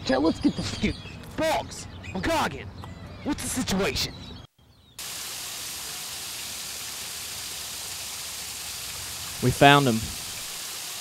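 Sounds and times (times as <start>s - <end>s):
radio static hiss: 9.0s - 11.0s.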